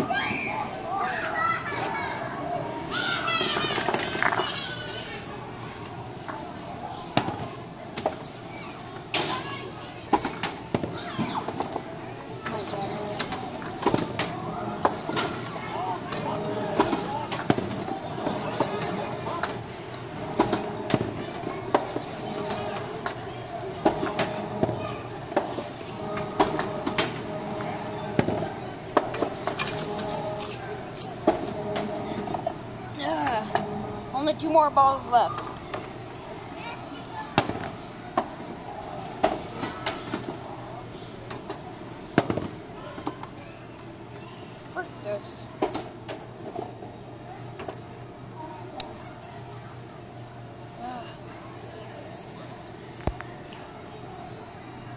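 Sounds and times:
chatter: 0:00.0 - 0:54.9
arcade machine noise: 0:05.3 - 0:50.8.

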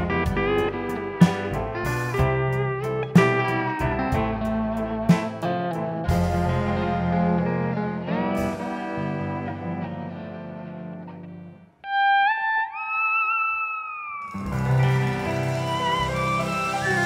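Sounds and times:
western swing band playing: 0:00.0 - 0:11.3, 0:14.3 - 0:17.0
pedal steel guitar: 0:00.0 - 0:17.0.

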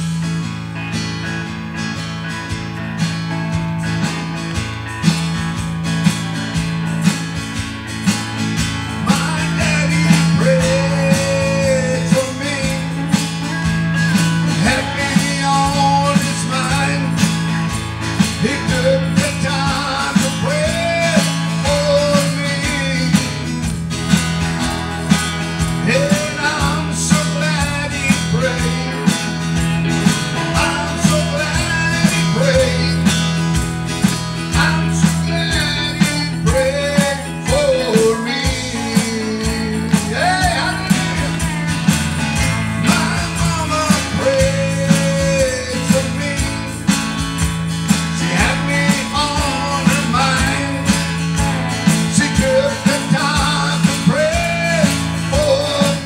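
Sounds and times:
acoustic guitar strumming: 0:00.0 - 0:56.0
man singing gospel song: 0:08.8 - 0:56.0.

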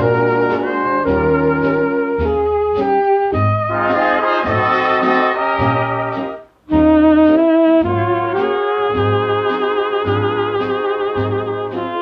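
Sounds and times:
swing dance band playing: 0:00.0 - 0:12.0.

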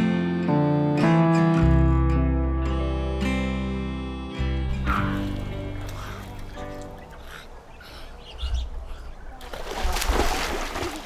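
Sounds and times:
birds chirping: 0:04.6 - 0:09.8.

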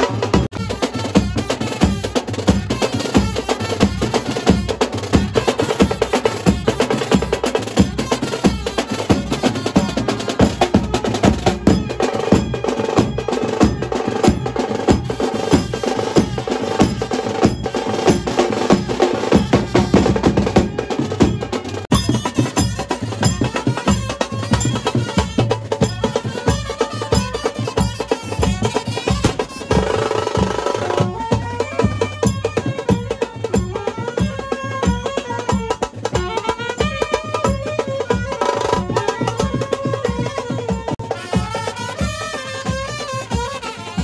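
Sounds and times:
snare and bass drums: 0:00.0 - 0:44.0
trumpets and saxophones: 0:00.0 - 0:44.0.

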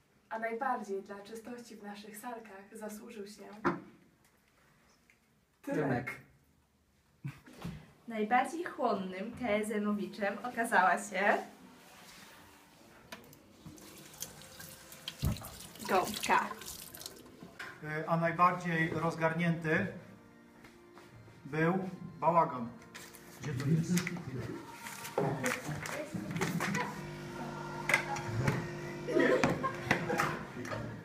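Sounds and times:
tap running into sink: 0:13.2 - 0:17.2.

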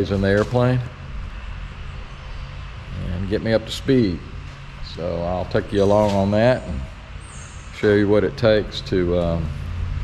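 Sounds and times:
faint low hum: 0:00.0 - 0:10.0
low background rumble: 0:00.0 - 0:10.0.

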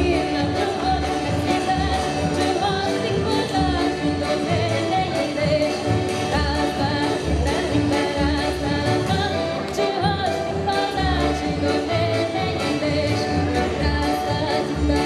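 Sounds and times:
piano accordion: 0:00.0 - 0:15.0
violin: 0:00.0 - 0:15.0
woman singing into microphone: 0:00.0 - 0:15.0.

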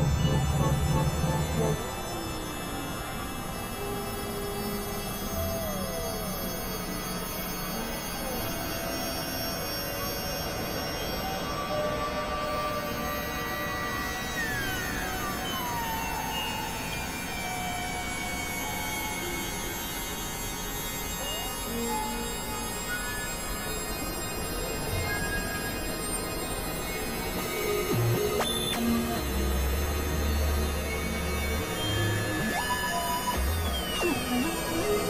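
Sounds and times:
electronic drone music: 0:00.0 - 0:02.2, 0:26.6 - 0:35.0.

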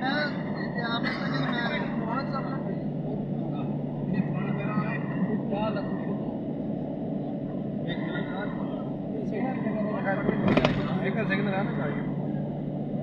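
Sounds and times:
voices talking: 0:00.0 - 0:12.8
car driving at speed from inside: 0:00.0 - 0:13.0.

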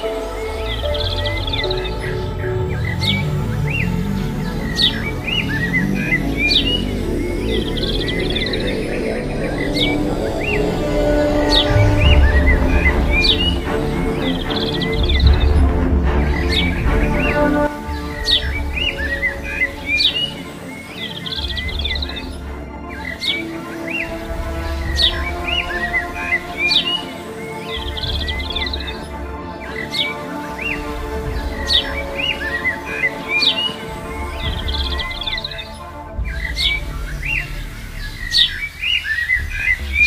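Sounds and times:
background music: 0:00.0 - 0:40.0
small birds chirping: 0:00.0 - 0:40.0.

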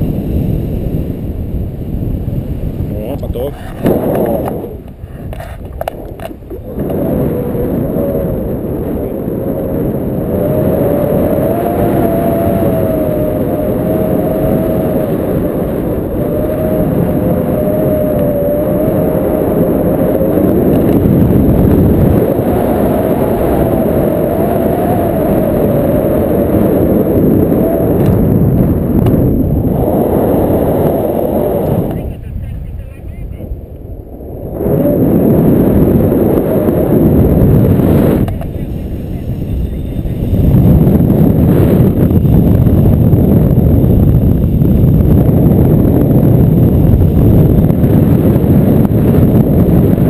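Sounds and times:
wind rushing over microphone: 0:00.0 - 0:50.0.

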